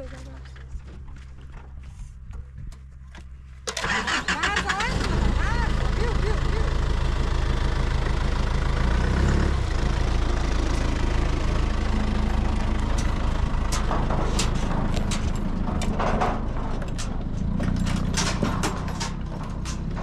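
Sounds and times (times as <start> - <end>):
truck engine starting and idling: 3.5 - 20.0.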